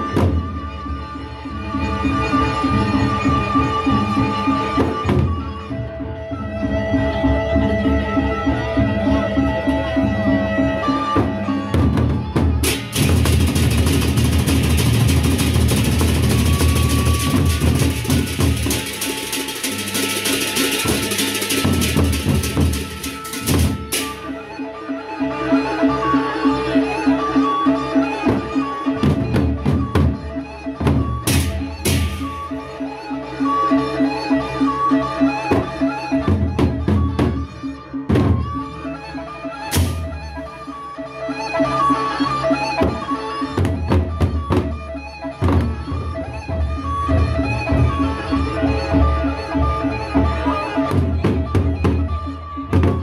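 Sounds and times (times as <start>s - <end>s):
barrel drums beaten in a roll: 11.8s - 24.3s, 30.8s - 32.6s
hand cymbals clashing: 12.6s - 24.4s.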